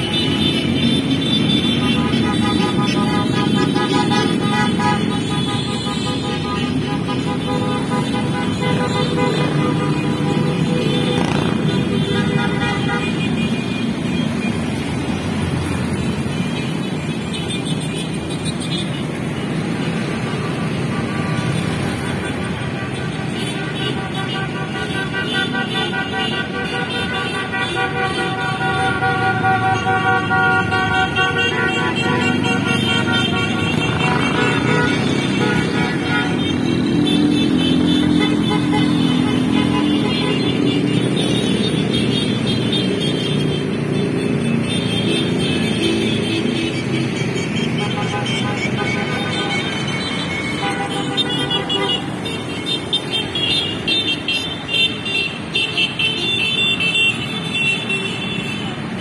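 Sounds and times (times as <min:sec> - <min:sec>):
car horns tooting: 0:00.0 - 0:14.9, 0:20.1 - 0:59.0
motorcycles and cars passing: 0:00.0 - 0:59.0.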